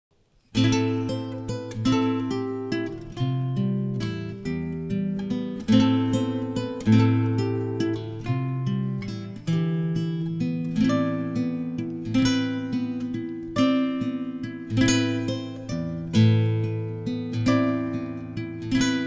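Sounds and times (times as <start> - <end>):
acoustic guitar strumming chords: 0.5 - 19.0.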